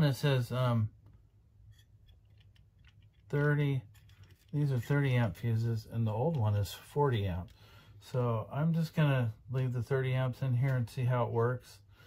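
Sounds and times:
faint clicks from handling circuit boards: 1.0s - 7.6s.

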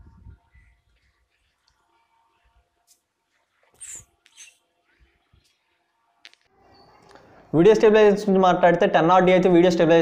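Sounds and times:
small bird chirping: 3.8s - 5.7s, 6.6s - 7.4s.

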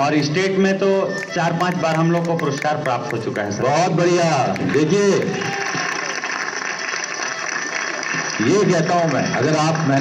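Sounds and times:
audience applauding: 1.1s - 10.0s.

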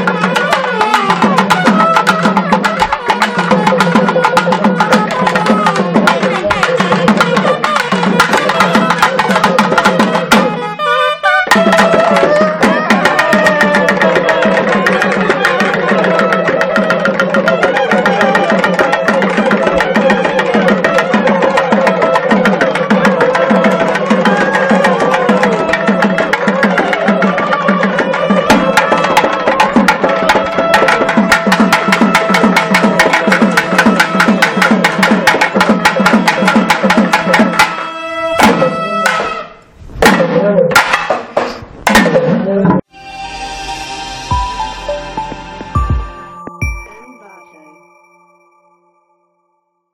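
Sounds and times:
rapid thavil drumming: 0.0s - 37.8s
nadaswaram melody: 0.0s - 41.3s, 41.9s - 49.4s.

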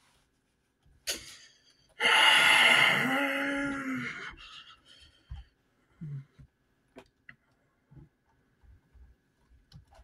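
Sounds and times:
person gasping loudly: 2.0s - 5.1s.

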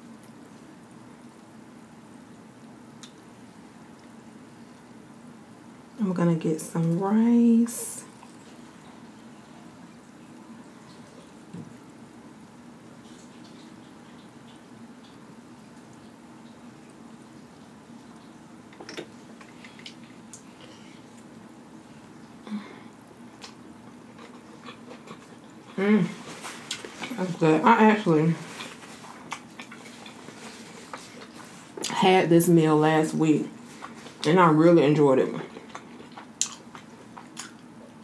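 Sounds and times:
steady low hum: 0.0s - 38.0s
chewing mouth noises: 8.1s - 9.0s, 23.3s - 27.2s, 28.5s - 32.0s, 35.4s - 38.0s.

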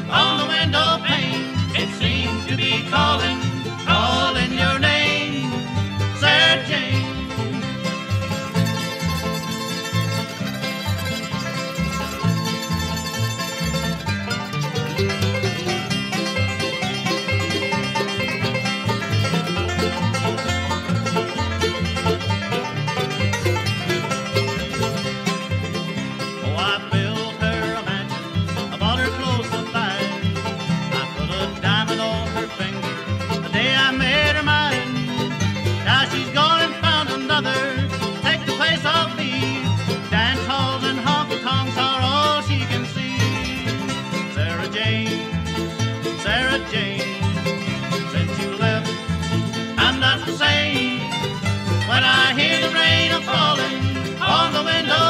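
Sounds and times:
bluegrass band playing: 0.0s - 55.0s.

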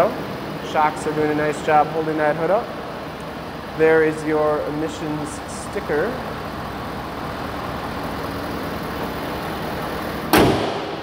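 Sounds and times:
diesel engine idling: 0.0s - 11.0s
car hood slamming shut: 10.2s - 11.0s.

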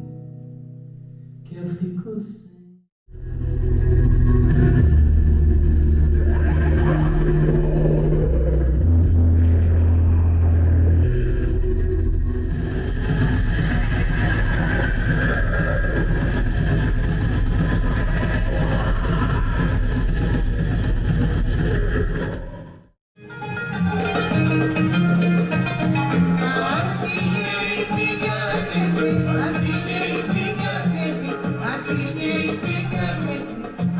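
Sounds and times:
loud bass-heavy live music: 3.2s - 22.4s, 23.5s - 33.9s.

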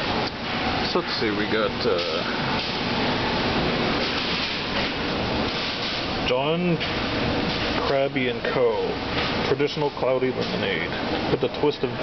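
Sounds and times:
shop background noise: 0.0s - 12.0s.

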